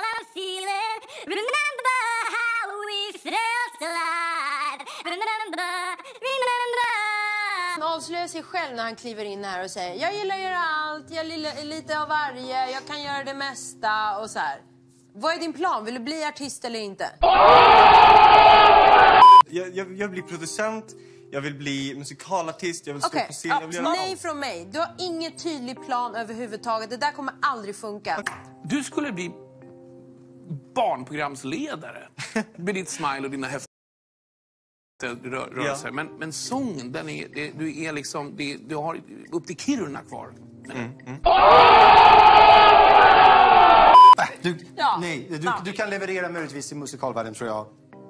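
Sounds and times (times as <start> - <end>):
crowd shouting: 17.2 - 19.4, 41.2 - 44.2
many voices yelling together: 17.2 - 19.4, 41.2 - 44.0.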